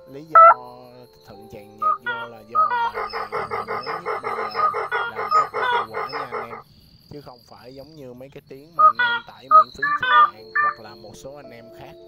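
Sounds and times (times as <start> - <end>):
music underneath: 0.0 - 6.6, 8.8 - 12.0
waterhen calls: 0.3 - 0.6, 1.8 - 6.6, 8.8 - 11.0.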